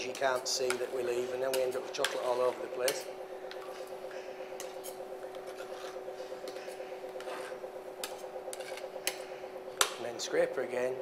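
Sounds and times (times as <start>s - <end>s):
machine humming: 0.0s - 11.0s.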